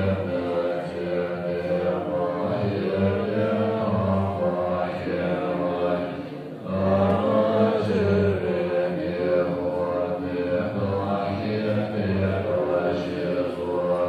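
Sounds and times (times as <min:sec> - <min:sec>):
monks chanting in unison: 0:00.0 - 0:14.0.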